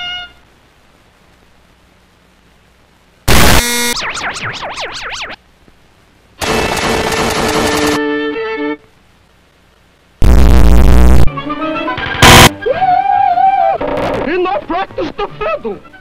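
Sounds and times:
distorted cartoon music bursts: 3.3 - 5.4, 10.2 - 11.3, 11.9 - 12.9
loud bass blast: 12.2 - 12.5.

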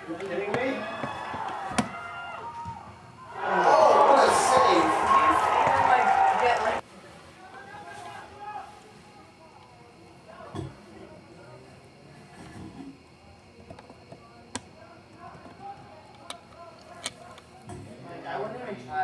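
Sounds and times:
distant shouts and chatter: 0.0 - 12.0.

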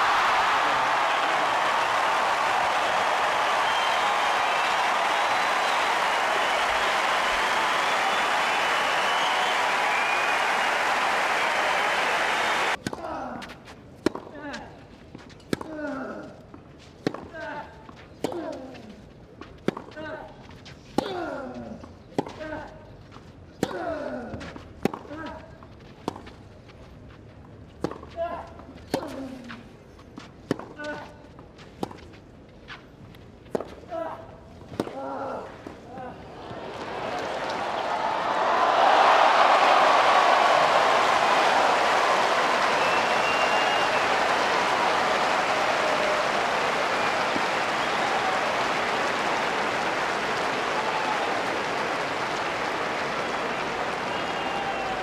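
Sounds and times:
crowd cheering and applause: 0.0 - 12.8, 36.2 - 55.0.

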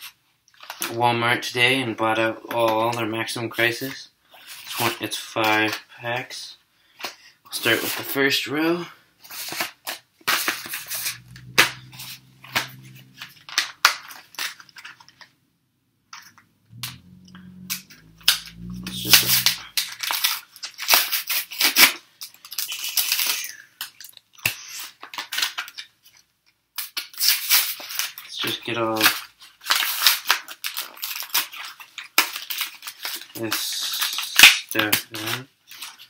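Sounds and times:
foil wrappers crinkling: 19.8 - 25.9, 27.2 - 36.0.

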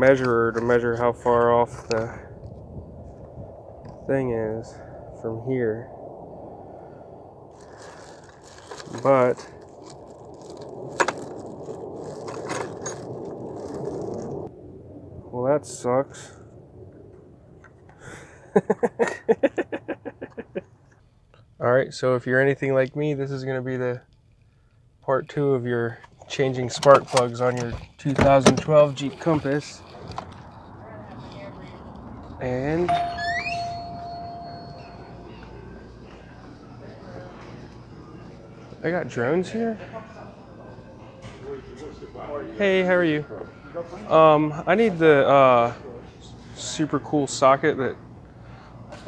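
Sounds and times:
plastic bag crinkling: 7.5 - 14.4
electronic door chime: 32.8 - 35.4.

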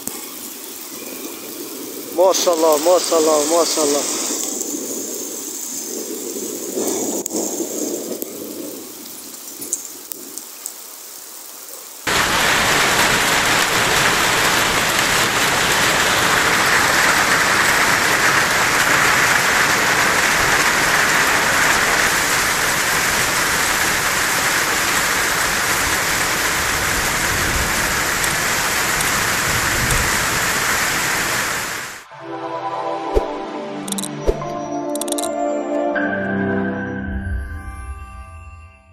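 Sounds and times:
light rain with scattered ticks: 0.0 - 32.0
heavy rain and hail pouring: 0.0 - 32.1.

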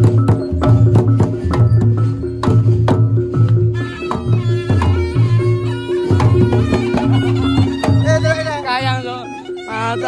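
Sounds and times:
drums in repeating rhythm: 0.0 - 10.0.

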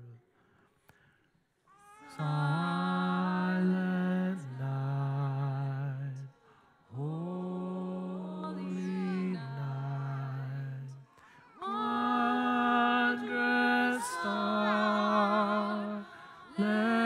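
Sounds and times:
congregation singing a hymn: 7.0 - 10.9, 11.5 - 17.0.

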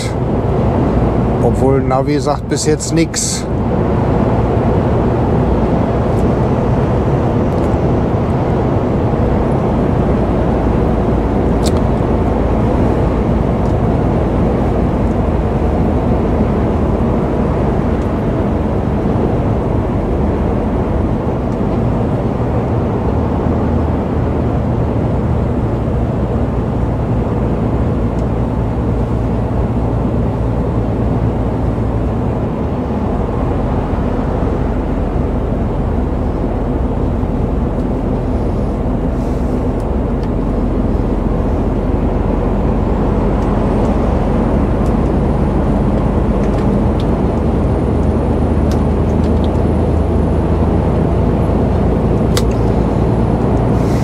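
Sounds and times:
road and tyre noise: 0.0 - 54.0
truck engine drone: 0.0 - 54.0.

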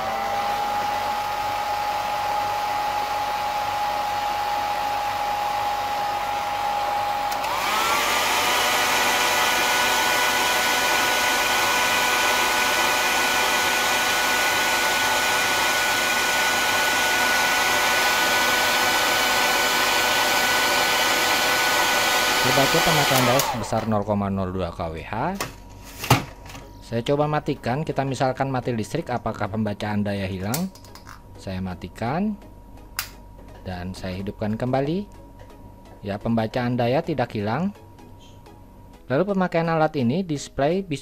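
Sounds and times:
hair dryer whine: 0.0 - 24.0.

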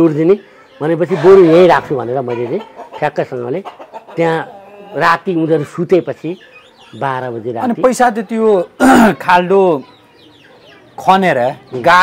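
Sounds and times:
small birds chirping: 0.0 - 12.0
man's voice: 7.0 - 9.8.

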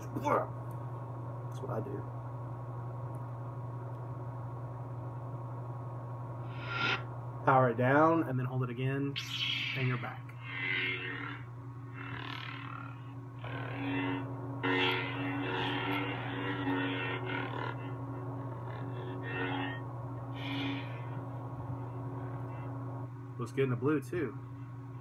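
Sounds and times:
lightsaber low electric hum: 0.0 - 25.0.

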